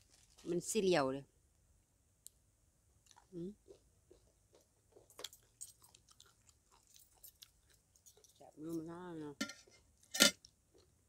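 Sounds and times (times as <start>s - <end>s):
person chewing food: 3.0s - 8.4s, 9.6s - 11.0s
person speaking: 8.4s - 9.4s.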